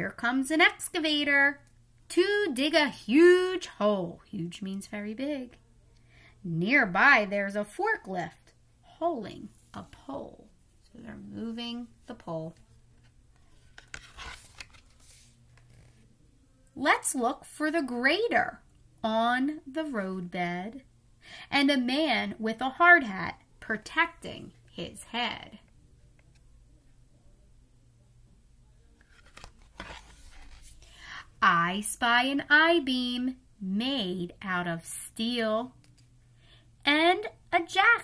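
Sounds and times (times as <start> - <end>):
cardboard page swishing: 13.4 - 16.0, 29.0 - 30.8.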